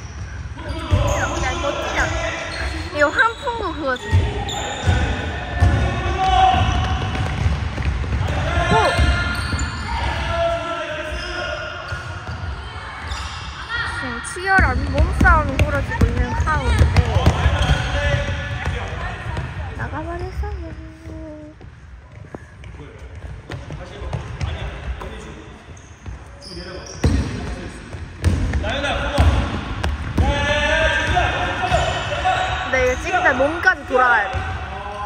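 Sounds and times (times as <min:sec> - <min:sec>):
basketball bouncing on hardwood: 0:06.5 - 0:09.2, 0:14.6 - 0:19.6, 0:28.2 - 0:28.6.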